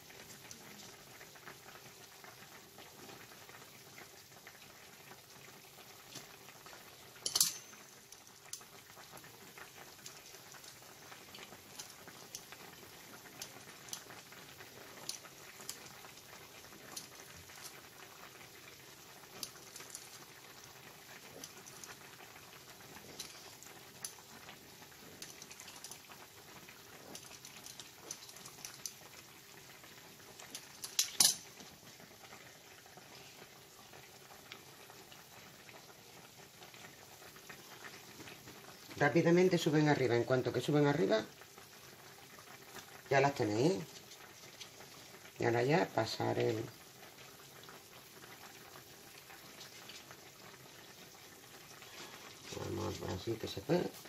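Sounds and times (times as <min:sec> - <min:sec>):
pan simmering with bubbling: 0:00.0 - 0:54.0.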